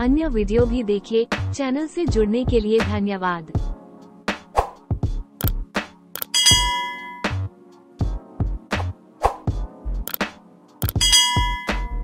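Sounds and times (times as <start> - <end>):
background music with steady beat: 0.0 - 12.0
click sound effects: 6.2 - 7.0, 10.1 - 11.9
bright bell ding: 6.3 - 7.4, 10.9 - 12.0.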